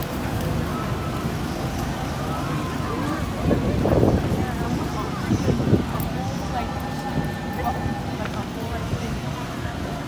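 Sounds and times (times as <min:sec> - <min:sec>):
wind on microphone: 0:03.3 - 0:06.2.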